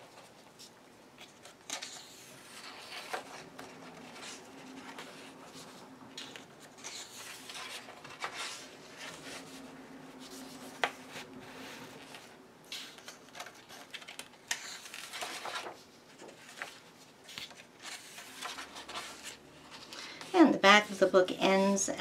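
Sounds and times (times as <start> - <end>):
paper rustling and sliding: 0.1 - 21.0.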